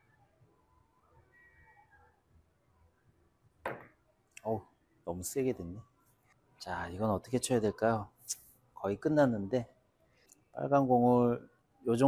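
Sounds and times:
cue striking ball: 3.7 - 3.9
billiard balls knocking: 3.7 - 4.0.

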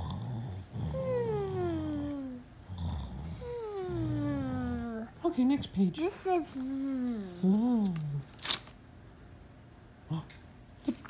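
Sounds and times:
paper page flipping: 7.8 - 8.8.

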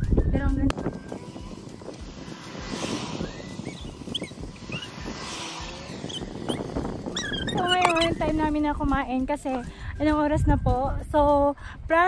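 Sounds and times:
vehicles passing by: 0.4 - 10.0.

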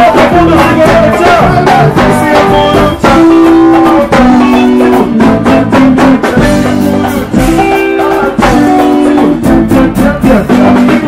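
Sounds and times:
live band playing loud music: 0.0 - 11.0.

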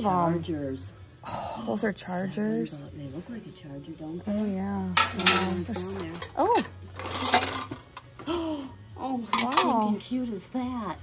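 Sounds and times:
metal plates clinking and clattering: 5.0 - 8.1, 9.3 - 9.9.

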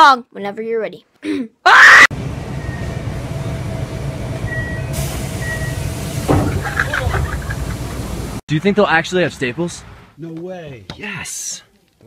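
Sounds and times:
train carriage rumble: 2.2 - 8.4.

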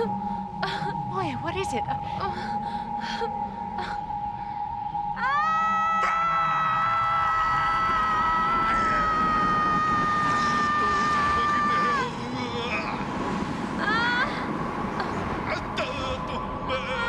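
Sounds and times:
woman screaming: 5.2 - 12.2.

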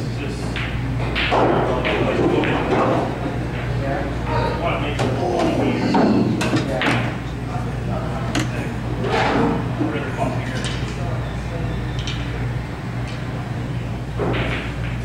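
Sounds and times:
people talking: 0.0 - 0.6, 1.3 - 14.3
steady low hum: 0.0 - 15.0.

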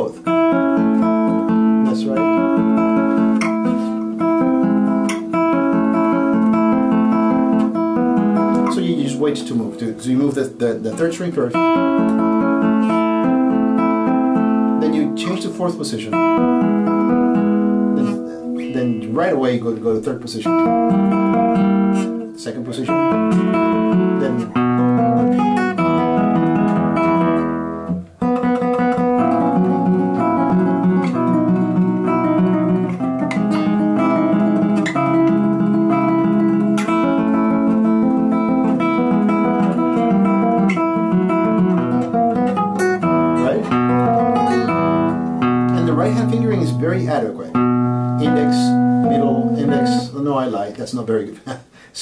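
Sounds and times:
classical guitar playing: 0.0 - 50.7
man's voice: 8.7 - 11.6, 14.8 - 16.2, 18.6 - 20.7, 22.4 - 23.1, 24.2 - 24.5, 45.7 - 47.6, 48.2 - 52.0.

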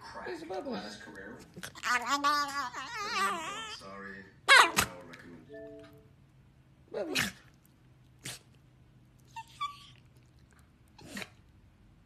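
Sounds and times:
small dog vocalizing: 1.4 - 3.9, 7.1 - 11.6.

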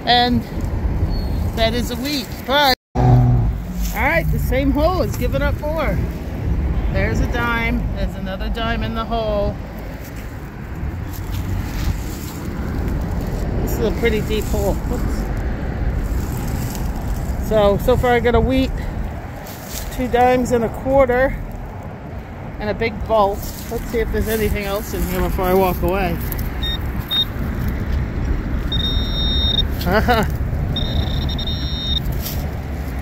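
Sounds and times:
wind noise on microphone: 0.0 - 20.2
soil rustling and scraping: 3.5 - 6.2, 9.6 - 18.0, 19.3 - 20.5, 23.2 - 27.8, 32.0 - 33.0
pinpointer high steady tone: 28.7 - 29.7, 30.8 - 32.0.

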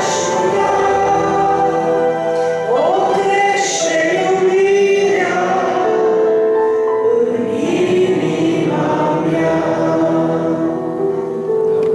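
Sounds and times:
woman singing into a microphone: 0.0 - 6.4
sustained musical accompaniment: 0.0 - 11.9.

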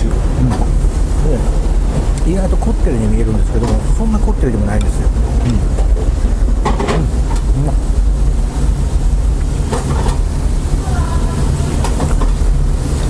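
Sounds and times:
steady low hum: 0.0 - 13.0
indistinct voices: 10.7 - 12.0.

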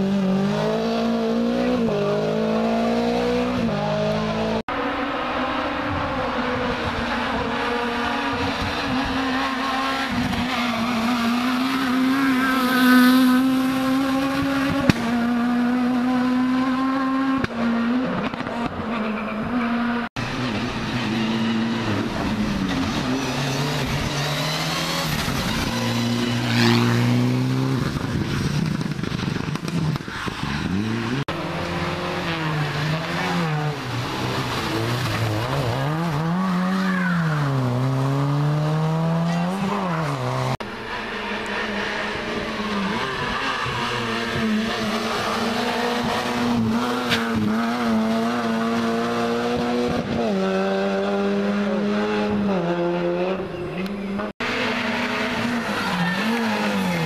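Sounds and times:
rally car engines at full throttle: 0.0 - 57.0.

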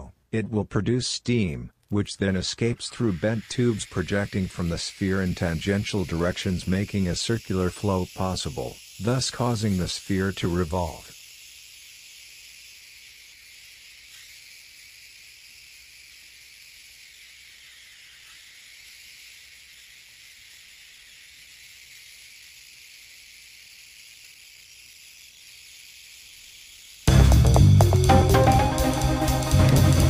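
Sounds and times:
faint steam hiss: 1.9 - 27.0.

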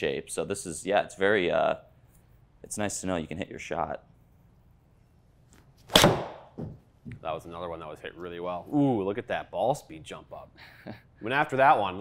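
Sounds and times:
ball hitting screen: 5.9 - 6.8.

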